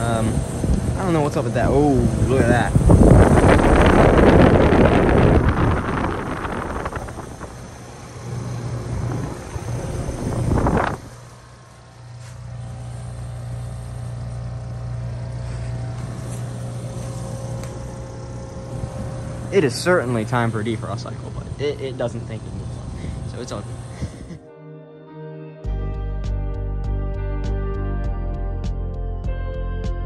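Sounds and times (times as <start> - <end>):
wind rushing on microphone: 0.0 - 11.2
heat pump compressor and fan hum: 0.0 - 24.4.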